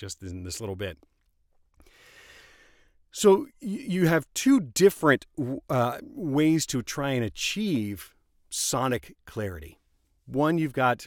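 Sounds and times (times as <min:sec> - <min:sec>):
faint breath close to microphone: 0:01.8 - 0:03.1.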